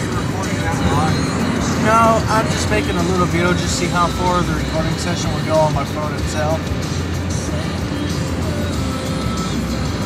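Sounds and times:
voice: 0.0s - 6.6s
car cabin road rumble: 0.0s - 10.0s.

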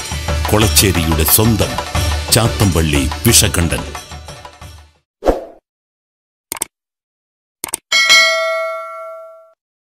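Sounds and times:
bright bell ding: 7.9s - 9.6s.

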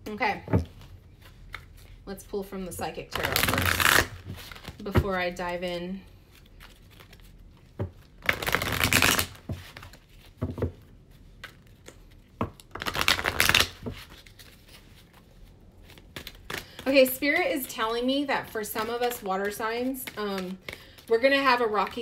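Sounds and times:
cards rustling while shuffled: 0.7s - 2.0s, 3.1s - 22.0s.

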